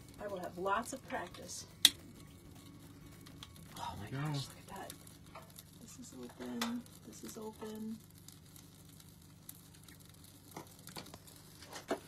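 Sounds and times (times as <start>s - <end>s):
sharp pops of fire: 0.0s - 3.7s, 4.7s - 12.0s
small fire crackling: 0.0s - 12.0s.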